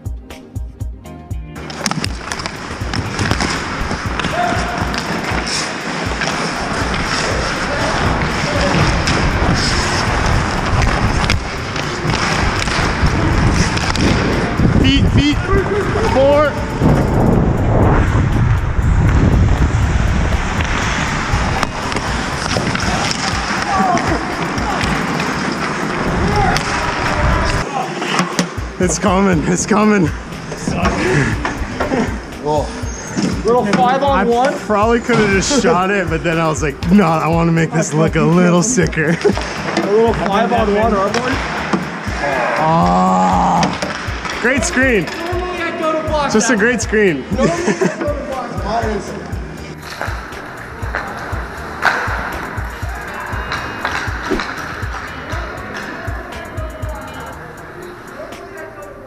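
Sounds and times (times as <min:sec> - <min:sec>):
skate blades scraping ice: 0:01.7 - 0:14.7, 0:20.3 - 0:28.6, 0:49.8 - 0:56.0
players shouting: 0:02.8 - 0:16.9, 0:20.8 - 0:37.4, 0:39.3 - 0:49.2, 0:50.3 - 0:59.0
wind on microphone: 0:08.1 - 0:23.0.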